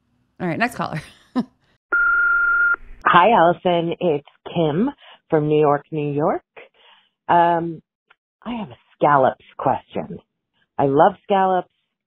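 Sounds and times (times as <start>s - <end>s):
voicemail beep: 1.9s - 2.8s.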